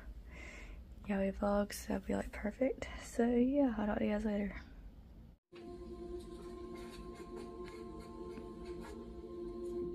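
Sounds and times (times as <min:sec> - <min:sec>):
ambient music with held tones: 0:05.5 - 0:09.9
marker writing on whiteboard: 0:06.2 - 0:09.1.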